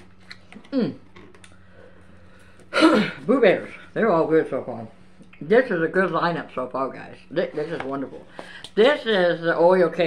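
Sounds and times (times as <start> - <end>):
woman clearing her throat: 2.7 - 3.2.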